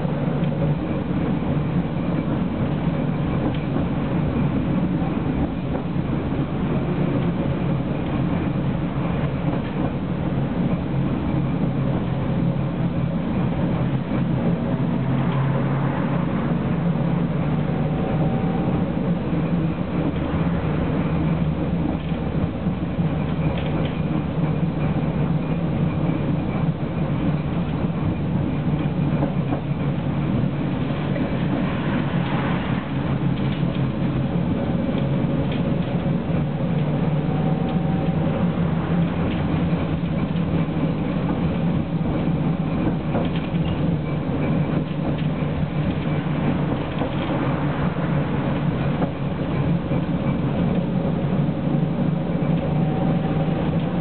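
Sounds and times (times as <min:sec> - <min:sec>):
tram wheels rumbling: 0:00.0 - 0:54.0.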